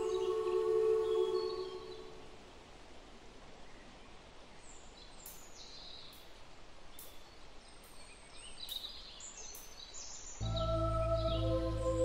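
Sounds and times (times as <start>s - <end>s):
ambient music held chord: 0.0s - 2.2s, 10.4s - 12.0s.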